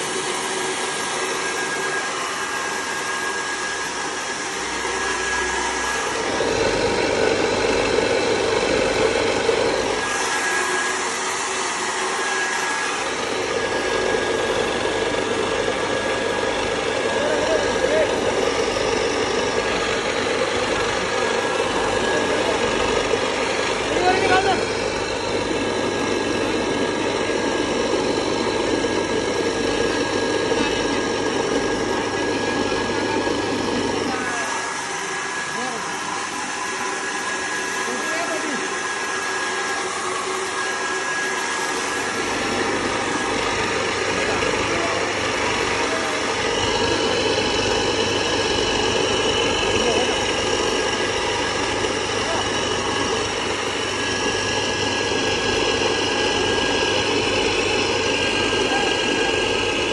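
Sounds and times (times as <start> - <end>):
grain cleaning machine motor hum: 0.0 - 59.9.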